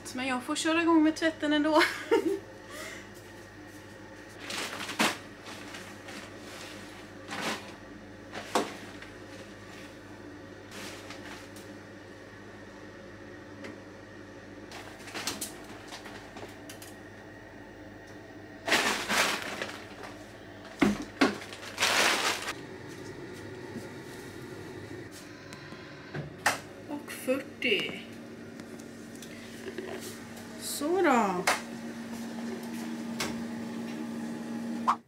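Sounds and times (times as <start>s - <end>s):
steady low hum: 0.0s - 35.0s
clothes rustling: 21.4s - 22.6s.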